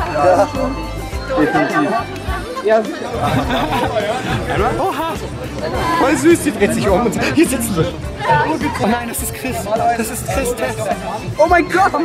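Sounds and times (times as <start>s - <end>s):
background music: 0.0s - 12.0s
many voices chattering: 0.0s - 12.0s.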